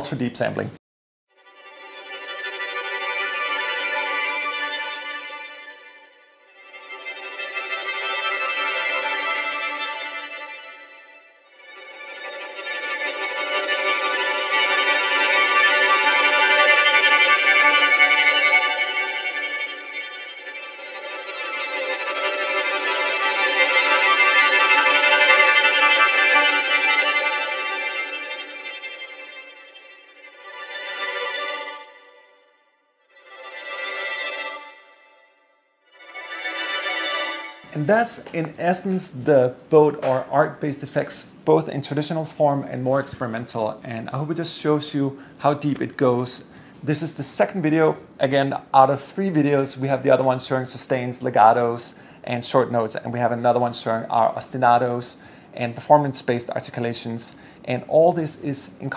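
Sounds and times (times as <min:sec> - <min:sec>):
violin tremolo notes: 0:01.4 - 0:58.9.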